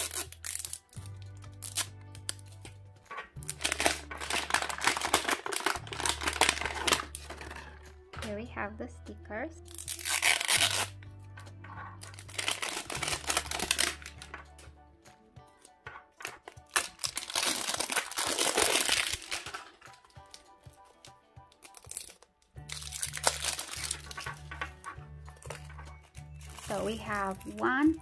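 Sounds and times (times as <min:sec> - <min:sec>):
plastic wrapping crinkling: 0:00.0 - 0:08.4, 0:09.7 - 0:11.0, 0:11.7 - 0:14.7, 0:15.6 - 0:28.0
background music: 0:00.0 - 0:28.0.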